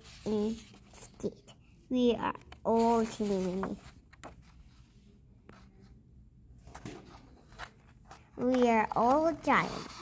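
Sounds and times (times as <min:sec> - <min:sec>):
paper pages handled: 0:02.5 - 0:04.8, 0:06.6 - 0:10.0.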